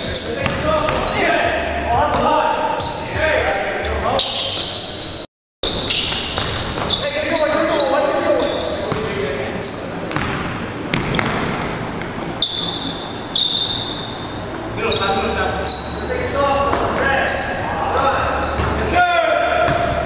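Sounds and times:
sneakers squeaking: 0.0s - 20.0s.

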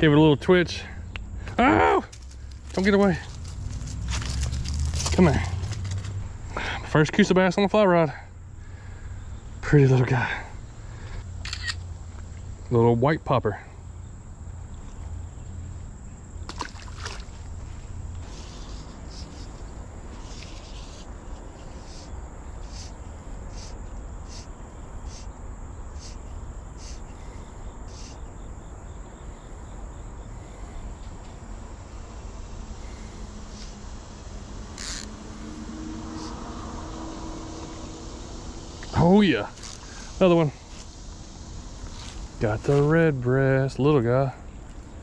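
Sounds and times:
low steady rumble: 0.0s - 27.6s, 29.8s - 45.0s
engine hum: 0.0s - 45.0s
high insect drone: 0.0s - 45.0s
insect chirps: 0.0s - 45.0s.

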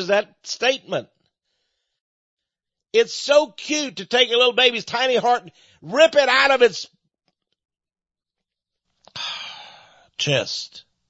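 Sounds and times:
man breathing: 1.4s - 2.1s, 5.5s - 5.8s, 9.0s - 10.2s.

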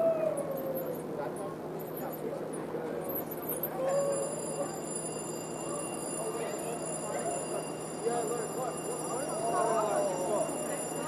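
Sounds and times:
emergency siren wailing: 9.1s - 11.0s.

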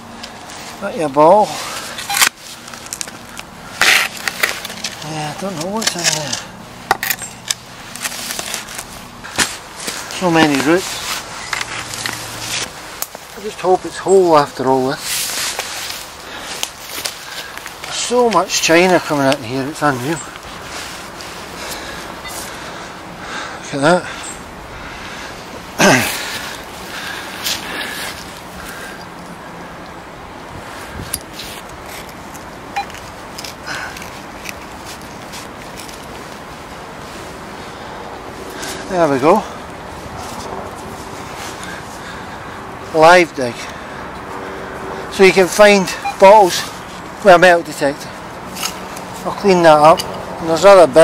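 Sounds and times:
hands digging in soil: 7.2s - 22.6s.

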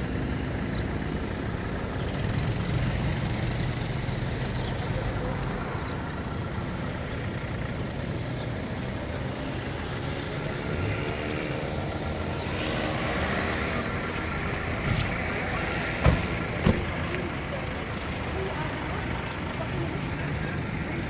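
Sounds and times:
vehicle engines rumbling: 0.0s - 21.0s.

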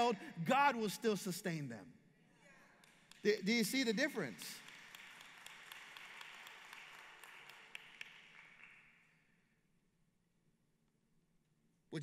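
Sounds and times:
faint scattered clapping: 2.8s - 3.4s, 4.4s - 9.2s.

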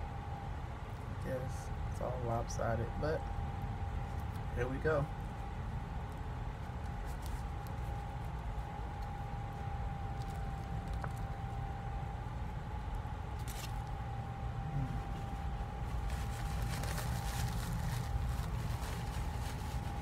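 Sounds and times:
machine hum with thin whine: 0.0s - 20.0s.

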